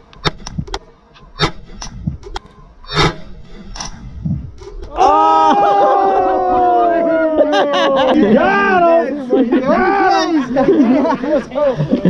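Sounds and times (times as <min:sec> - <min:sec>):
man shouting: 0:05.0 - 0:10.5.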